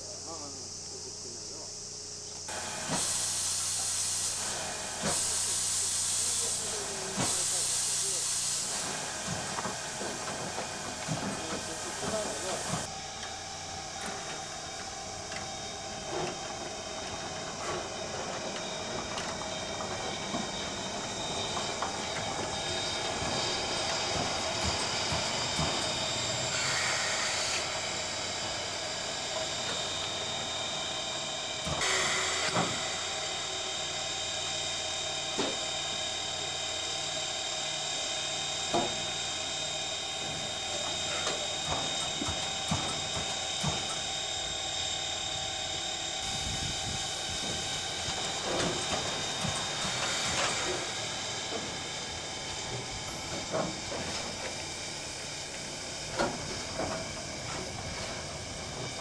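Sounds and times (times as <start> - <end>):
steam locomotive venting steam: 2.4 - 59.0.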